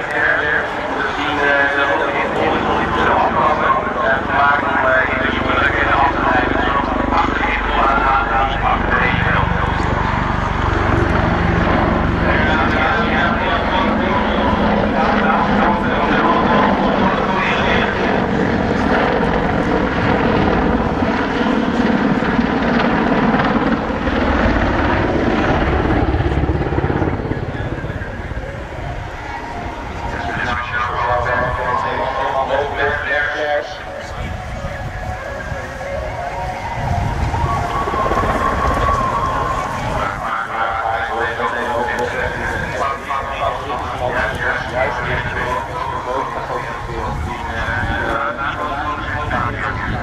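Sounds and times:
helicopter rotor and engines: 0.0s - 50.0s.

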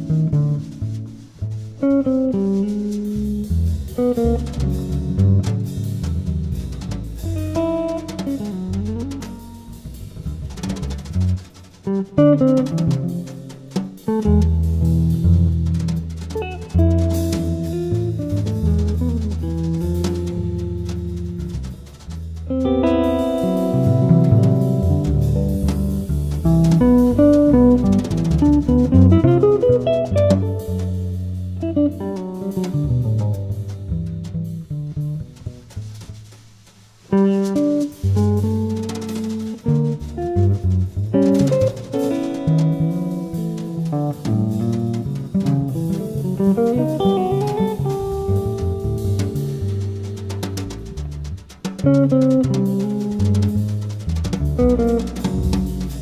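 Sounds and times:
drum kit: 0.0s - 56.0s
jazz guitar: 0.0s - 56.0s
walking bass line: 0.0s - 56.0s.

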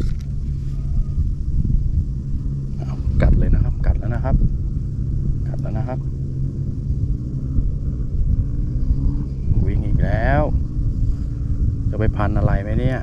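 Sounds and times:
steady low drone: 0.0s - 13.0s.

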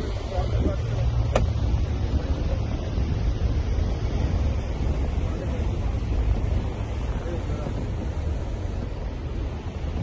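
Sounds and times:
vehicle road noise: 0.0s - 10.0s
wind buffeting microphone: 0.0s - 10.0s.

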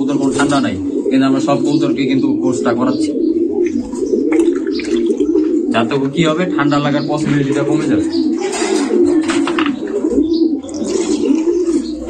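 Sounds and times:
pigeons cooing: 0.0s - 12.0s.

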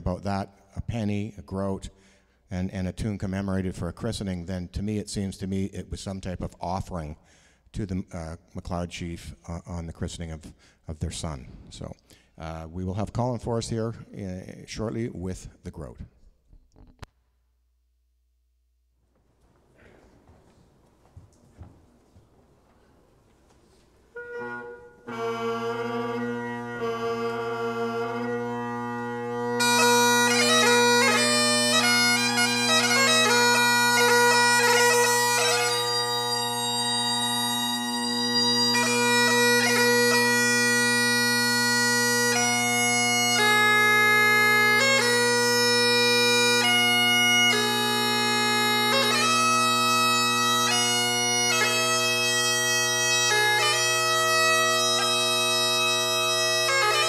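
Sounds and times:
bagpipe chanter ornamented notes: 22.6s - 57.0s
bagpipe drone: 24.1s - 57.0s.

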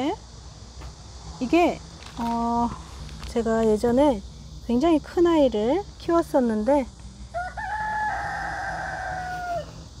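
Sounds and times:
rooster crowing: 7.3s - 9.9s.

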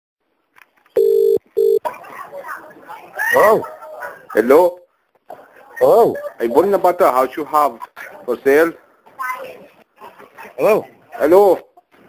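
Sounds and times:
telephone ringing tone: 1.0s - 1.8s.

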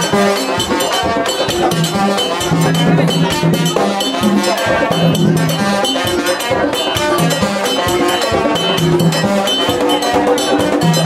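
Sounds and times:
drums: 0.0s - 11.0s
struck metal bell: 0.0s - 11.0s.

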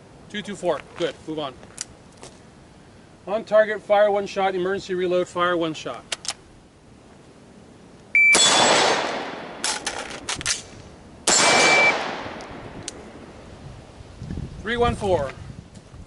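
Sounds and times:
shot timer beep: 8.2s - 8.6s, 11.6s - 12.0s
rifle shots: 8.2s - 12.7s
reload clicks and clatter: 8.4s - 13.0s.

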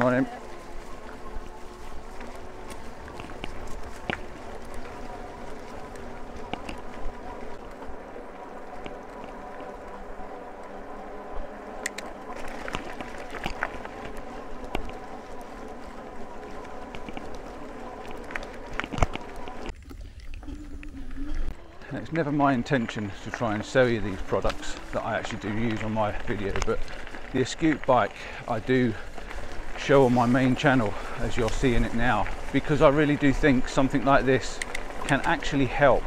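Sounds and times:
electric motor whine: 0.0s - 19.7s
tyres crunching on gravel: 0.0s - 20.8s, 21.5s - 36.0s
sharp clicks: 11.8s - 12.1s.

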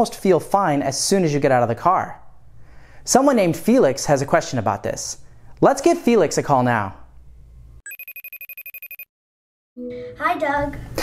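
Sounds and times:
electronic telephone ringing trill: 7.9s - 9.1s.

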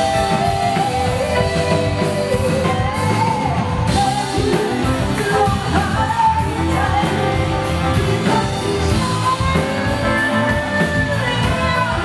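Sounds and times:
bass guitar: 0.0s - 12.0s
drum kit with cymbal strokes: 0.0s - 12.0s
electric guitars: 0.0s - 12.0s
woman singing lead: 0.0s - 12.0s.

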